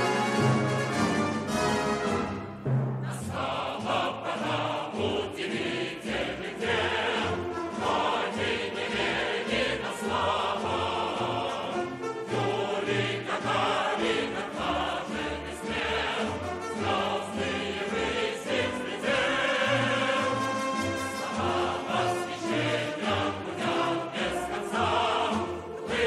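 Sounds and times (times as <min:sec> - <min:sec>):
orchestra playing a song: 0:00.0 - 0:26.0
voices singing: 0:03.0 - 0:26.0.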